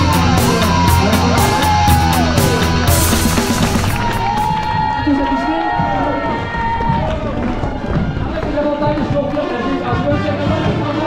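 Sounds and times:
music over loudspeakers: 0.0s - 5.0s, 8.4s - 11.0s
spectators cheering and clapping: 0.0s - 11.0s
voice over loudspeakers: 7.1s - 11.0s.

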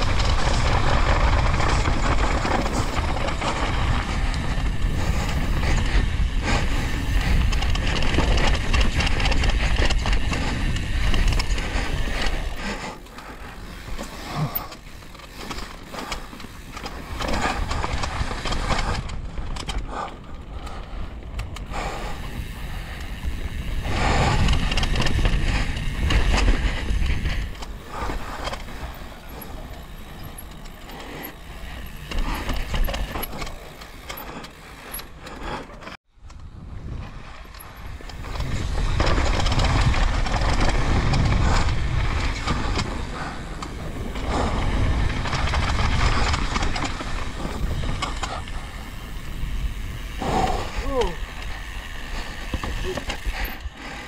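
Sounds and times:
bike rattling: 0.0s - 54.0s
bike tyres rumbling over dirt: 0.0s - 54.0s.

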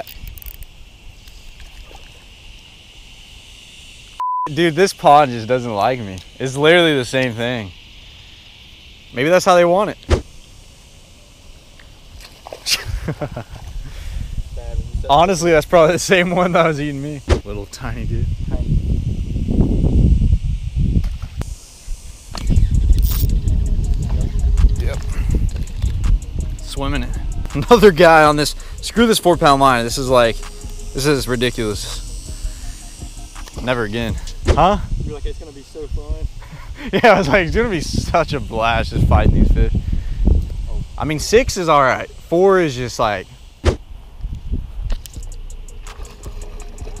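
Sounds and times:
sharp clicks: 0.0s - 1.4s, 22.3s - 28.8s, 33.3s - 33.7s, 44.8s - 46.9s
high insect drone: 0.0s - 47.0s
wind buffeting microphone: 12.7s - 15.9s, 17.3s - 41.5s, 43.8s - 47.0s.

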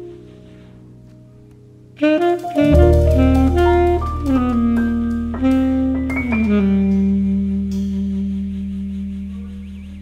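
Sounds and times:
jazz music final chord: 2.0s - 8.5s.

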